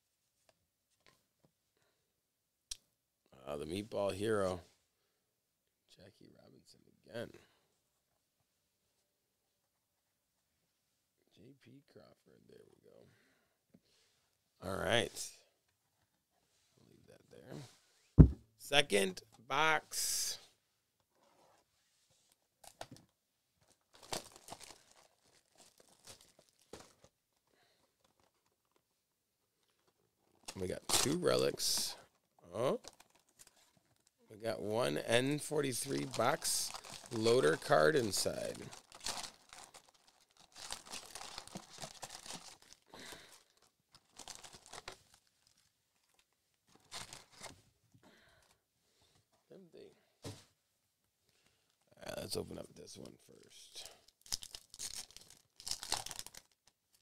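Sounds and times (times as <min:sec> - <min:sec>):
plastic wrap tearing and crinkling: 0:23.7 - 0:27.1, 0:35.8 - 0:37.7, 0:38.3 - 0:47.5, 0:54.0 - 0:57.0.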